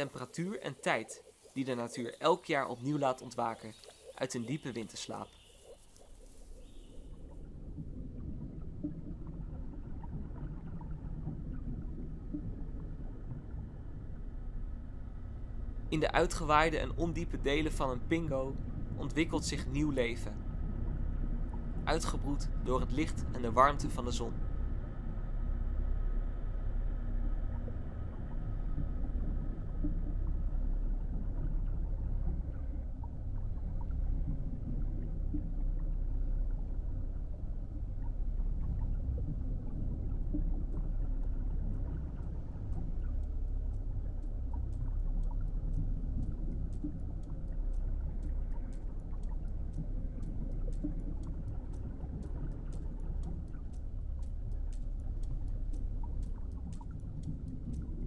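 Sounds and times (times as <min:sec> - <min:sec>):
underwater low rumble: 0:00.0 - 0:58.0
faint sharp clicks: 0:03.2 - 0:07.0, 0:41.9 - 0:58.0.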